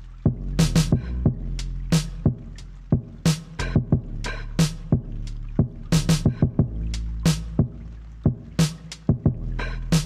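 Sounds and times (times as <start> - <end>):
lo-fi hip hop drum beat: 0.0 - 10.0
low bass line: 0.0 - 10.0.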